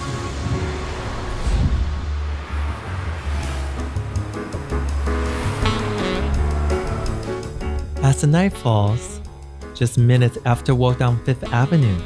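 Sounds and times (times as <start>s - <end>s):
city traffic rumble: 0.0s - 10.2s.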